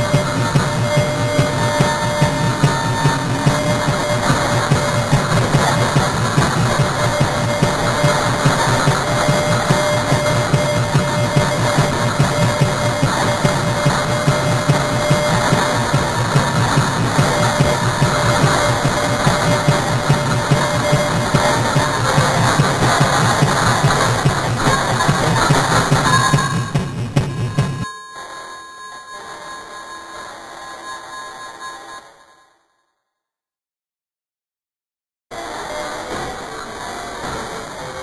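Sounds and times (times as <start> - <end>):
dense noise music: 0.0 - 27.8.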